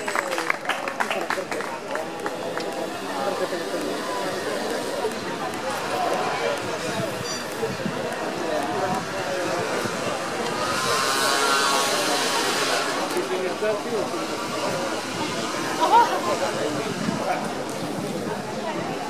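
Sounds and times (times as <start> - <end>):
murmur of voices: 0.0 - 19.0.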